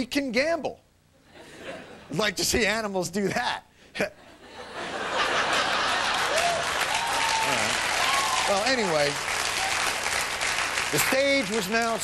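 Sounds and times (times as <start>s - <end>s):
audience applauding: 5.5s - 12.0s.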